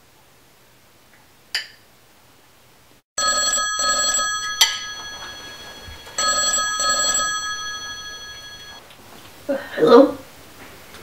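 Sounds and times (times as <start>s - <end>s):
telephone ringing: 3.2s - 8.8s.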